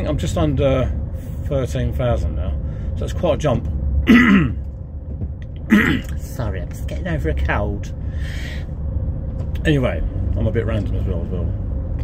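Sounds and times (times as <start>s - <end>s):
van engine drone and road noise: 0.0s - 12.0s
man clearing his throat: 4.0s - 4.7s, 5.6s - 6.2s.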